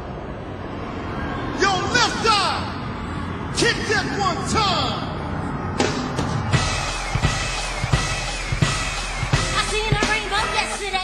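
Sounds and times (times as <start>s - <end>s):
drum-kit beat with heavy kick: 5.8s - 11.0s
live stage music: 6.6s - 11.0s.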